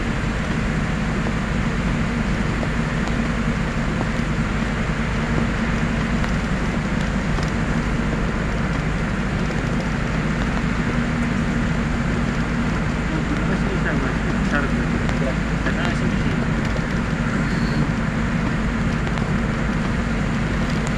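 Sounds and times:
vehicle engine drone: 0.0 - 20.9.

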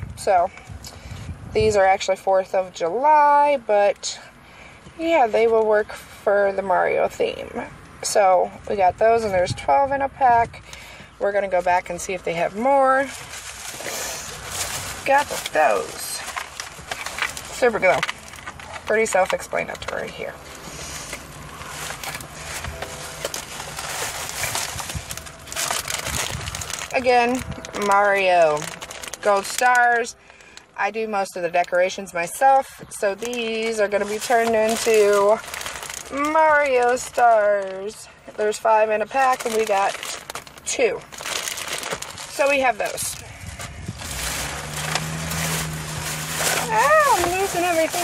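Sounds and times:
shopping bags being handled: 11.0 - 48.0
plastic packaging crinkling: 12.5 - 30.6, 33.1 - 48.0.

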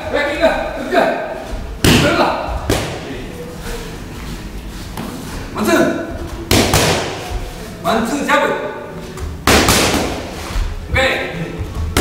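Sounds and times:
punches hitting punch mitt: 1.8 - 3.0, 6.5 - 7.3, 9.4 - 10.3.

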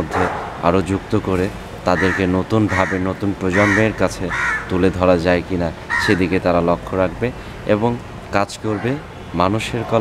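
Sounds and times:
man talking: 0.0 - 10.0
crow cawing: 1.9 - 4.8, 5.9 - 6.3.

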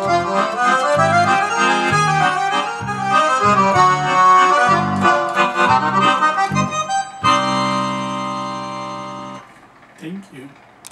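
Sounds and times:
accordion playing melody and chords: 0.0 - 9.5.

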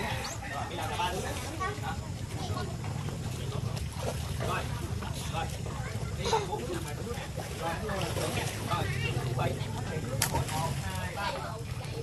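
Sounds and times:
children and adult talking: 0.0 - 12.0.

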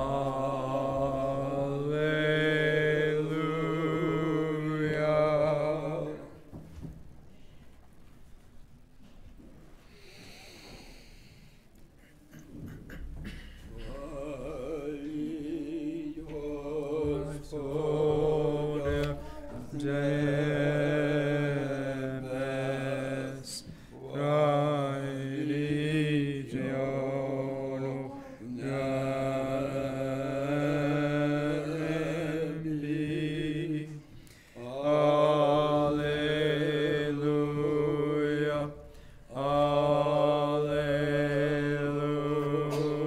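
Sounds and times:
unaccompanied liturgical chant: 0.0 - 7.0, 13.0 - 43.0.

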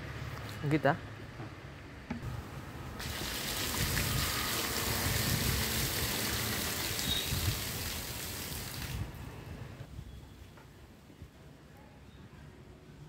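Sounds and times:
water pouring onto soil: 3.0 - 9.2.

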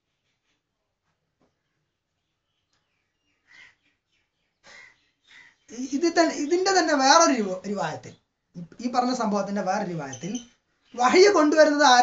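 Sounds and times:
faint bird calls: 1.5 - 6.6.

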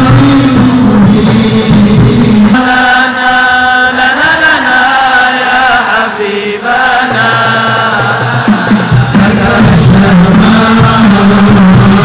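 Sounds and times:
men singing devotional chant: 0.0 - 12.0.

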